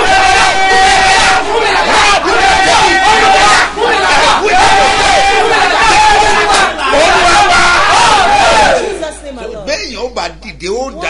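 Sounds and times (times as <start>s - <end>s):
preacher shouting: 0.0s - 9.0s.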